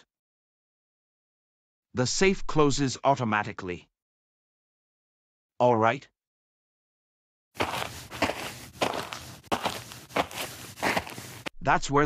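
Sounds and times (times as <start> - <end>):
footsteps walking: 7.6 - 11.5.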